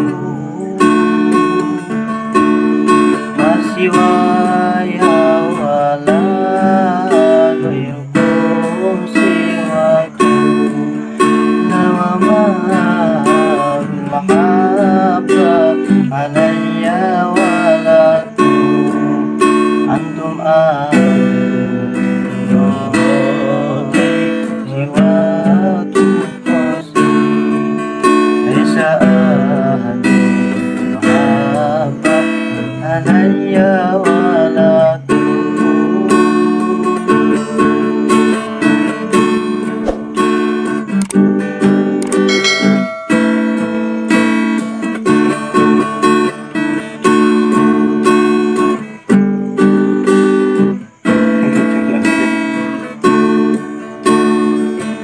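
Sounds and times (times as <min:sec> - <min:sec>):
acoustic guitar: 0:00.0 - 0:55.0.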